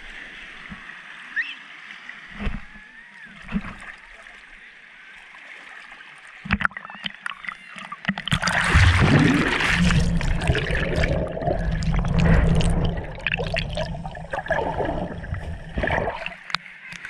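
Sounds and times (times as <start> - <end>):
sea water lapping and splashing: 0.0 - 17.0.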